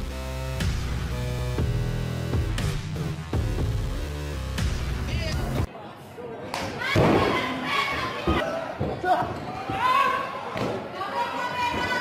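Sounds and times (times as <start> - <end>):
people shouting: 6.8 - 12.0.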